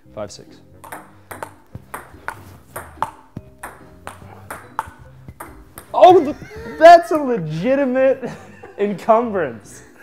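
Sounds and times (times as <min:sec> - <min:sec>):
table tennis ball clicking: 0:00.8 - 0:06.1.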